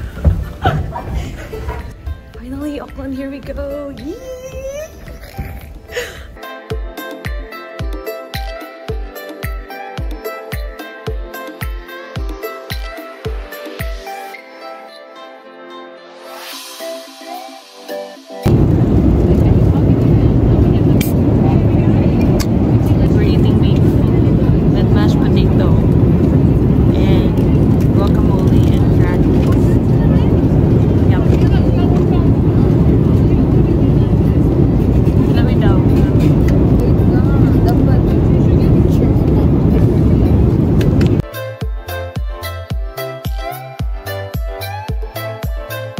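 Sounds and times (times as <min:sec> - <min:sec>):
jet cabin rumble: 0:00.0 - 0:06.4, 0:18.4 - 0:41.2
faint voices: 0:18.5 - 0:41.2.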